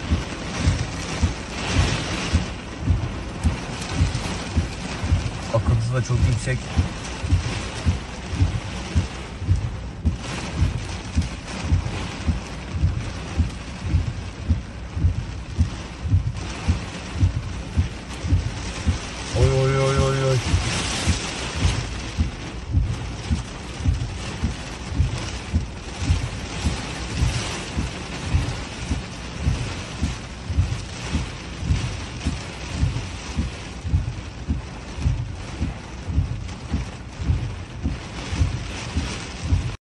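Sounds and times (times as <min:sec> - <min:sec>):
heavy rain on car roof: 0:00.0 - 0:39.8
regular low thumping: 0:00.0 - 0:39.8.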